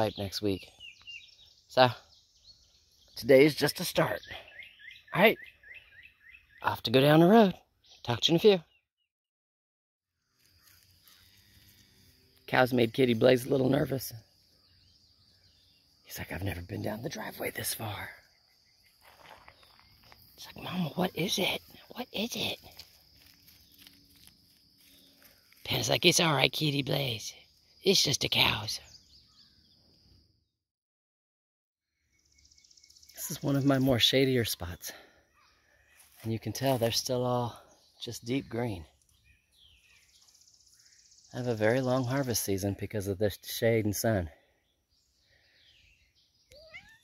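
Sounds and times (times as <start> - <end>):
faint bird chirps: 0.0 - 8.8, 10.1 - 30.4, 31.9 - 47.0
faint footsteps on gravel: 10.3 - 13.0, 18.8 - 20.7, 21.6 - 25.8, 35.8 - 37.0.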